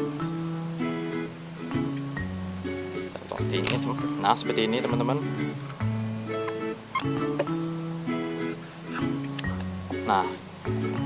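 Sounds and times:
instrumental music with held notes: 0.0 - 11.0
pruning shears snipping: 3.1 - 4.0.

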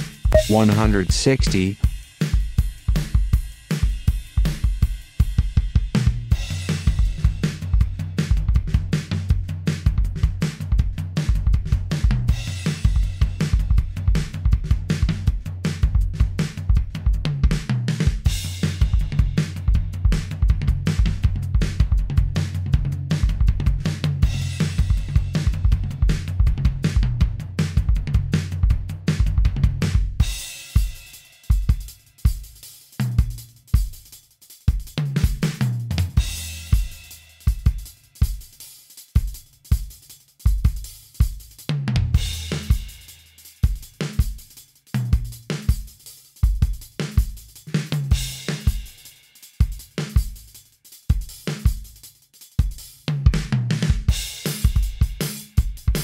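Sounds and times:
programmed drum beat: 0.0 - 56.0
low held tone: 0.4 - 0.8.

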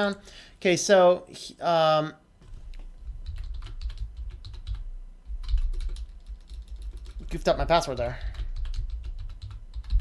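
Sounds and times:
typing on computer keyboard: 2.8 - 10.0.

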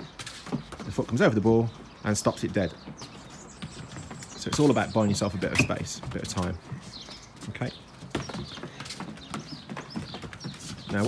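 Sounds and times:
birds chirping faintly: 0.0 - 11.0
footballs knocking under foot: 0.0 - 11.0
footsteps on decking: 0.0 - 11.0.

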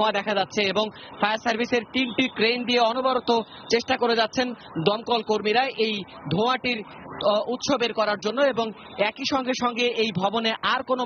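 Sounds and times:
news reporter talking: 0.0 - 11.0.

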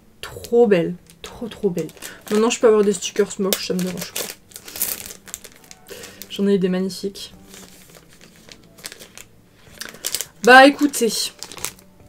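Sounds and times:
plastic wrapper crinkling: 0.4 - 12.0.

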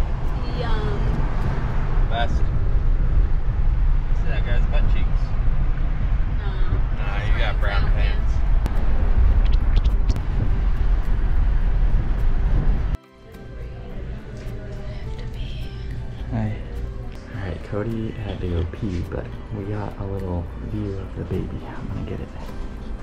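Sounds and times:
car road and wind noise: 0.0 - 13.0, 16.9 - 23.0
background music: 11.9 - 23.0.

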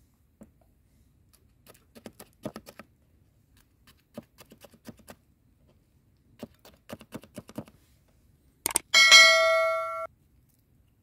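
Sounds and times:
notification bell ding: 9.0 - 10.1.

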